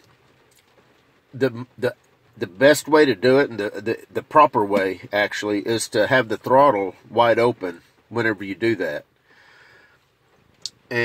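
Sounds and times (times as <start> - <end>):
man talking: 1.3 - 9.1, 10.7 - 11.0
high hiss of breath intake: 9.2 - 10.0
man breathing: 9.2 - 10.1.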